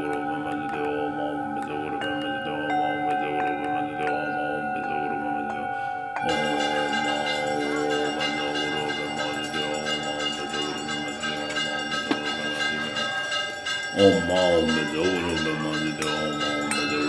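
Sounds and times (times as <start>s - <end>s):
bells ringing: 0.0s - 17.0s
faint chanting voices: 0.0s - 17.0s.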